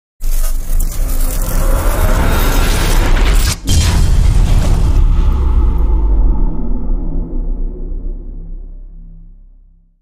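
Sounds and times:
loud low rumble: 0:01.4 - 0:10.0.

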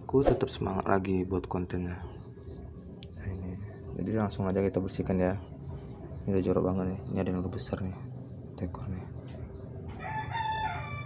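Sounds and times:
rooster crowing: 0:10.0 - 0:11.0.

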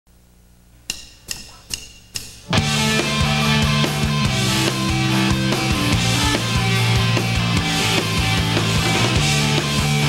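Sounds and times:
faint low hum: 0:00.1 - 0:02.1
drumstick clicks: 0:00.9 - 0:02.5.

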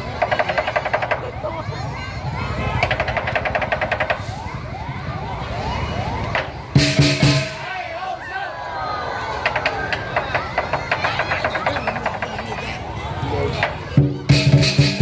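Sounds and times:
crowd voices: 0:00.0 - 0:15.0
drum and cymbals playing: 0:06.7 - 0:07.7, 0:13.7 - 0:15.0.

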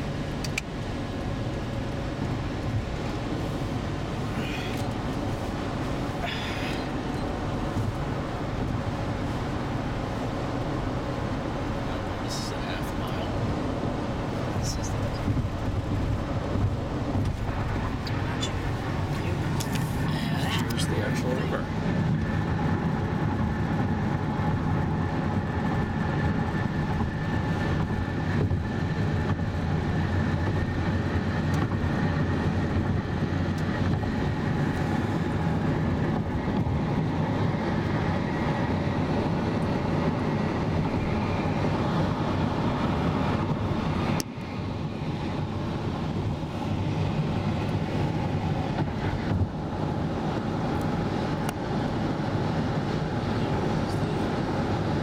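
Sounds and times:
car road noise rumble: 0:00.0 - 0:55.0.

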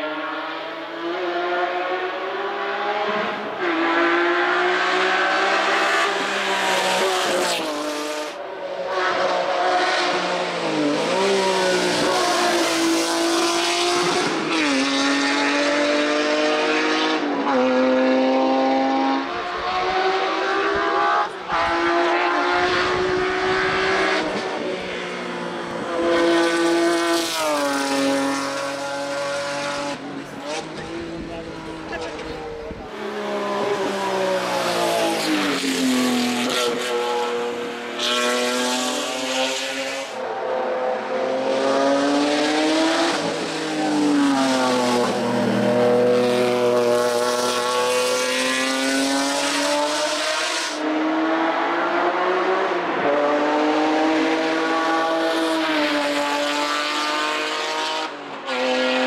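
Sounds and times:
race car engine at full throttle: 0:00.0 - 0:59.0.

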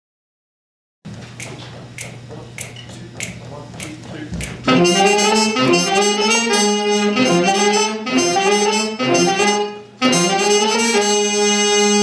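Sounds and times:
finger snaps: 0:01.4 - 0:04.6
band playing: 0:04.4 - 0:12.0.

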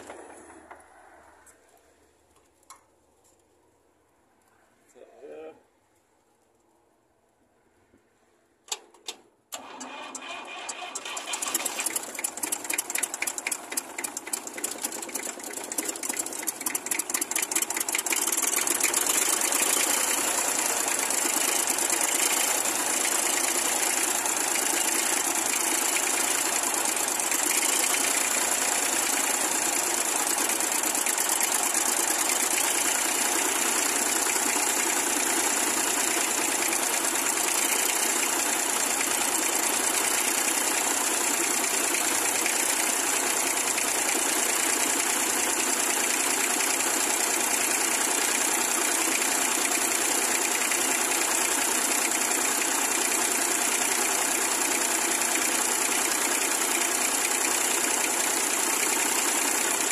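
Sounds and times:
diesel engine cranking: 0:09.5 - 0:40.5
diesel engine idling: 0:09.6 - 0:59.9.

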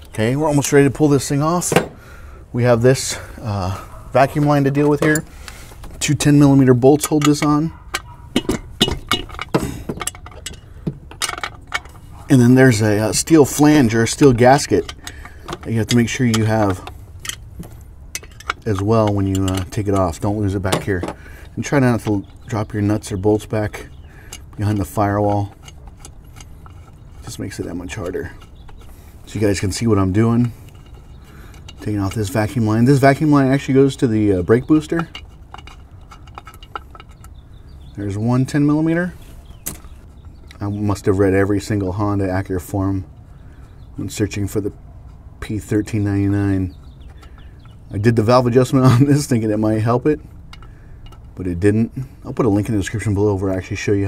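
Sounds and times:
steady low hum: 0:00.0 - 0:54.0
hands clicking and tapping hose: 0:04.2 - 0:38.9, 0:39.6 - 0:40.7.

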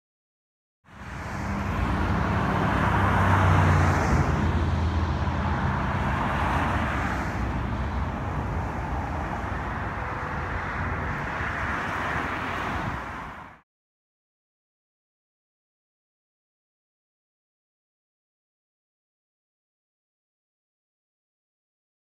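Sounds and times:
car passing by: 0:00.9 - 0:13.6
distant road traffic: 0:00.9 - 0:13.6.

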